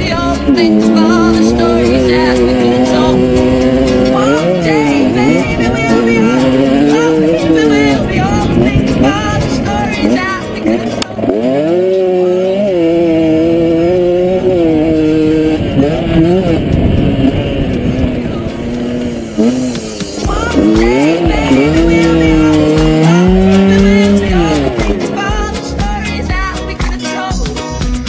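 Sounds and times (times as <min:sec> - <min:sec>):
two-stroke engine revving: 0:00.0 - 0:26.6.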